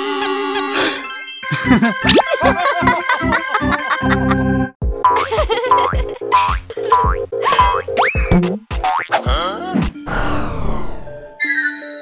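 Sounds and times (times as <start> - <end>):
bouncy cartoon music: 0.1 - 10.3.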